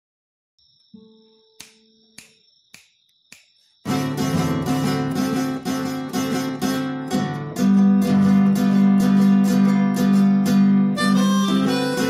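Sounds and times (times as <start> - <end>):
finger snaps: 1.6 - 3.7
acoustic guitar strumming: 3.8 - 12.0.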